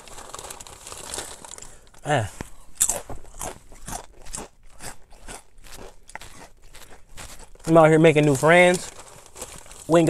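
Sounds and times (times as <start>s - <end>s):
chewing crunchy potato chips: 0.0s - 10.0s.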